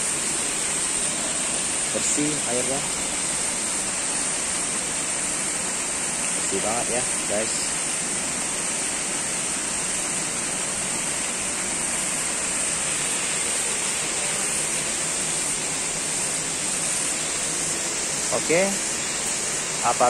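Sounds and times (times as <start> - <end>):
running water rushing: 0.0 - 20.0.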